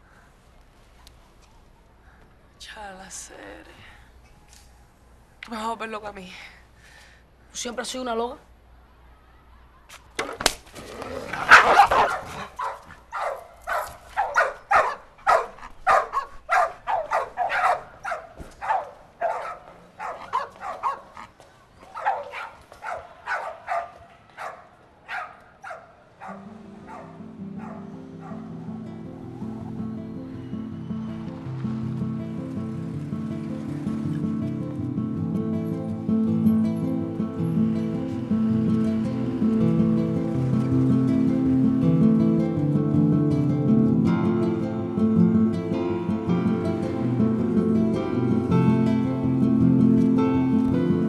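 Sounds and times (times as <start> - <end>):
dog barking: 11.5 - 21.2, 21.9 - 28.5
background music with low notes: 26.5 - 51.0.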